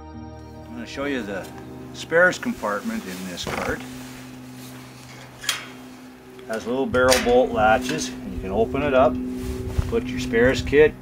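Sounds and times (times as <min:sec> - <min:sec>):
faint steady hum: 0:00.6 - 0:11.0.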